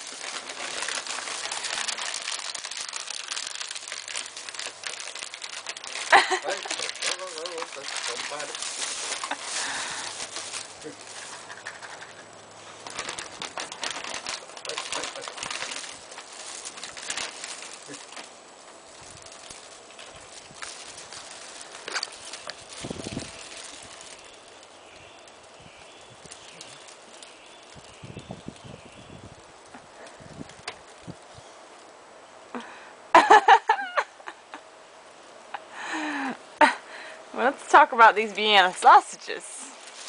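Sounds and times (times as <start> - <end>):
plastic packaging crinkling: 0.0 - 32.0, 37.9 - 40.0.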